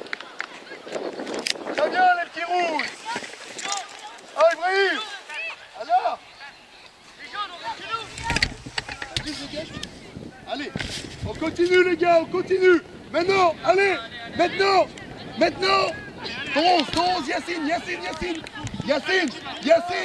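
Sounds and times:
children and coaches shouting: 1.8 - 6.6, 12.4 - 20.0.

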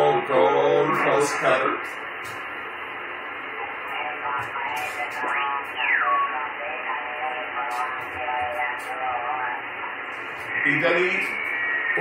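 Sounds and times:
garbled radio voices: 0.0 - 2.1, 3.5 - 12.0
radio hiss: 0.0 - 12.0.

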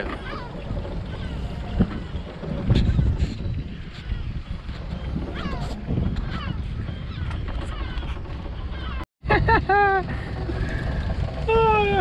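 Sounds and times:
wind and water noise: 0.0 - 12.0.

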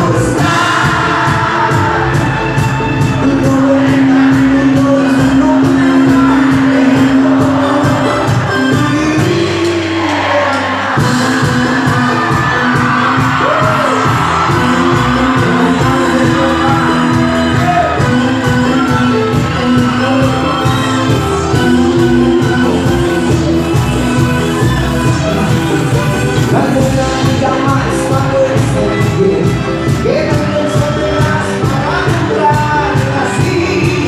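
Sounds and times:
crowd noise: 0.0 - 34.0
live band playing: 0.0 - 34.0
person singing: 0.0 - 34.0.

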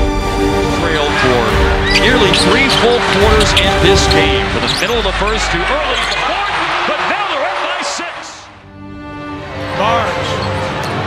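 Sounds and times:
steady music: 0.0 - 11.0
sneakers squeaking on court: 4.6 - 5.0.

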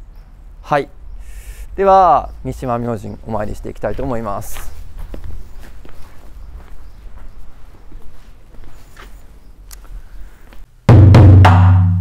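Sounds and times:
footsteps walking: 3.4 - 10.7.

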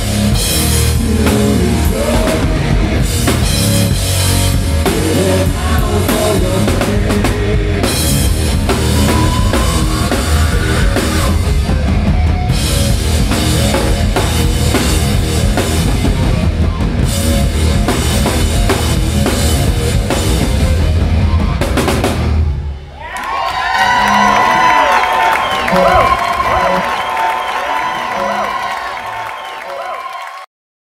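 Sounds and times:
hard rock band playing live: 0.0 - 22.7
crowd cheering and whistling: 7.9 - 12.7, 22.5 - 30.5.

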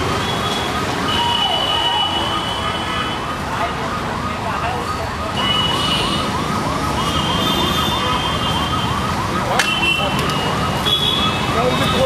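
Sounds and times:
siren yelping: 0.0 - 12.0
street noise: 0.0 - 12.0.

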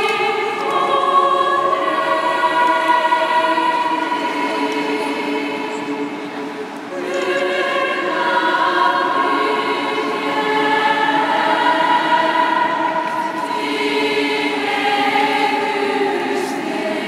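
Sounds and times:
choir singing held chords: 0.0 - 17.0.

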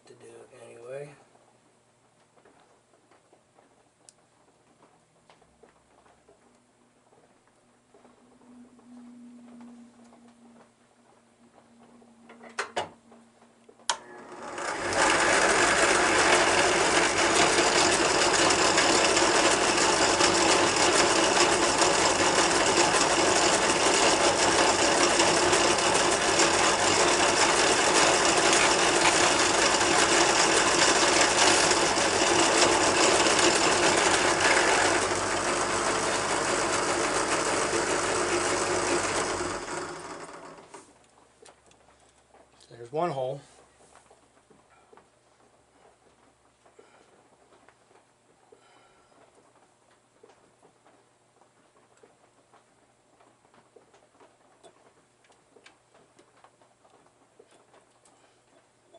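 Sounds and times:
drill press motor running: 13.9 - 40.9
drill bit drilling plastic: 14.2 - 40.8.

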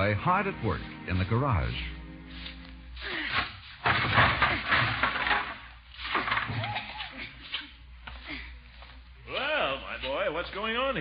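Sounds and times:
scraping and clattering of objects: 3.0 - 7.8.

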